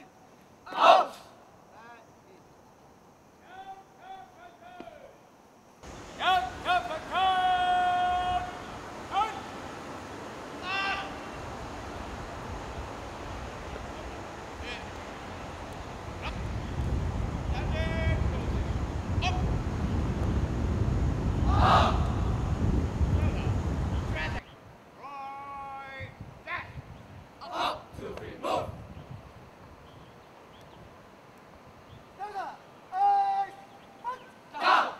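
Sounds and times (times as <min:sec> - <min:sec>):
distant voices calling out: 0:05.8 - 0:26.8, 0:27.4 - 0:28.9, 0:32.1 - 0:34.9
low rumble: 0:16.2 - 0:24.4.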